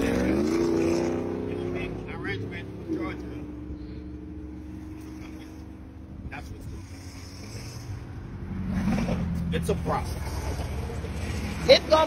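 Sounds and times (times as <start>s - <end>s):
vehicle engine speeding past: 0.0s - 5.9s, 6.8s - 12.0s
steady engine drone: 0.0s - 12.0s.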